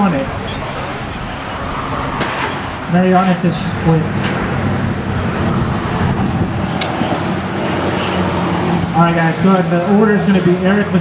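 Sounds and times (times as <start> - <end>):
high electric motor whine: 0.0 - 9.8
mechanical hum: 0.0 - 11.0.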